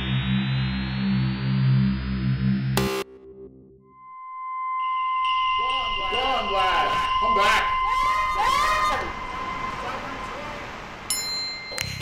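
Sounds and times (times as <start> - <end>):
high-pitched sine tone: 0.0 - 10.0
higher electronic tone: 0.0 - 10.0
wavering arching electronic sounds: 0.0 - 10.4.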